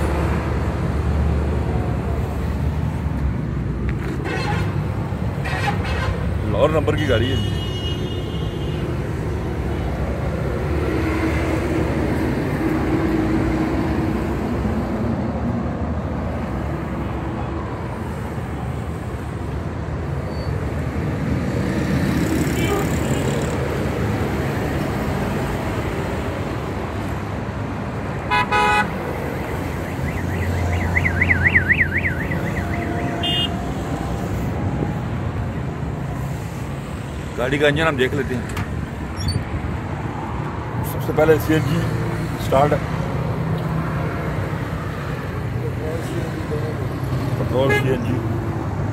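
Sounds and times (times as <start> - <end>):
street traffic: 0.0 - 48.9
car horn toot: 28.3 - 28.9, 30.4 - 33.6.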